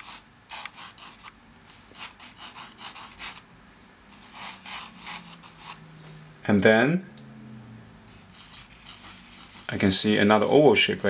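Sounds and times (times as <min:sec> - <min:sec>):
pencil scratching on paper: 0:00.0 - 0:01.3, 0:02.0 - 0:03.4, 0:04.1 - 0:05.8, 0:08.1 - 0:11.0.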